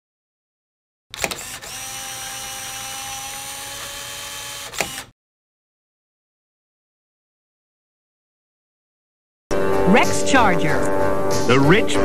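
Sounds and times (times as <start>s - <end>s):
sharp mechanical clicks: 1.1s - 5.1s
steady whir with held tones: 1.2s - 5.1s.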